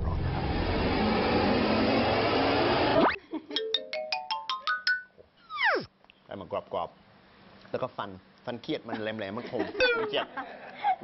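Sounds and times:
rushing noise with upward sweep: 0.0s - 3.2s, 5.5s - 5.9s
rising ringing notes: 5.5s - 5.9s.

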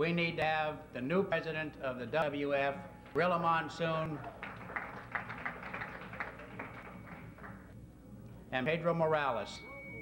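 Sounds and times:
faint steady hum: 0.0s - 10.0s
audience hand claps: 4.2s - 7.7s.

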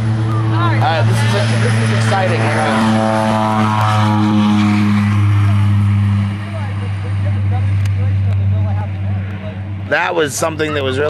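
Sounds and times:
propeller airplane engine humming: 0.0s - 11.0s.

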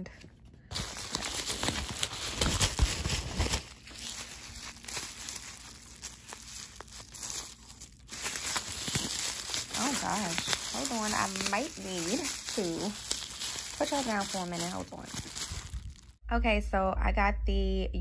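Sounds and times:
packaging rustling and crinkling: 0.2s - 16.2s.

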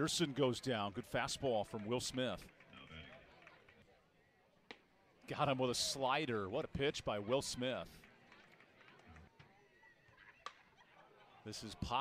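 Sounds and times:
faint ballpark background: 0.0s - 12.0s.

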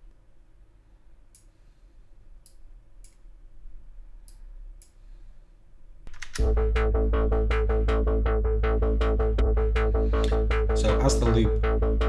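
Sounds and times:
low hum: 3.0s - 12.0s
drum loop playing: 6.4s - 12.0s.

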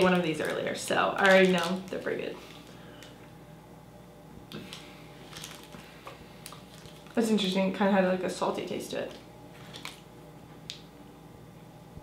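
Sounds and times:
candy wrappers crinkling: 0.0s - 3.2s, 4.5s - 7.6s, 8.7s - 10.1s.

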